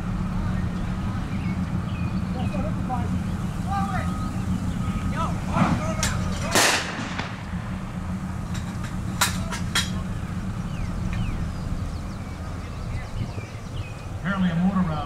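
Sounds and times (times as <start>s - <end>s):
low engine hum: 0.0s - 15.0s
pyrotechnic explosion: 4.8s - 8.0s
blank gunfire cracks: 6.4s - 7.4s.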